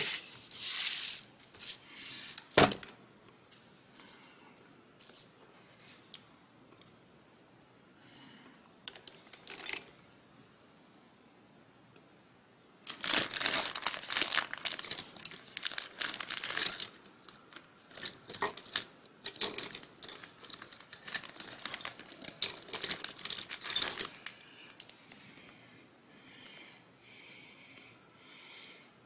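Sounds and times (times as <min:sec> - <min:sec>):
crinkling and rustling: 0:00.0 - 0:03.6, 0:12.8 - 0:25.0.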